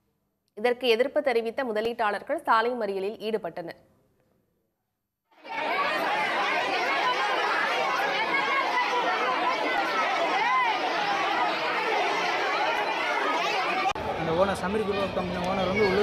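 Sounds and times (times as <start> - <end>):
crowd arguing: 5.4 - 16.0.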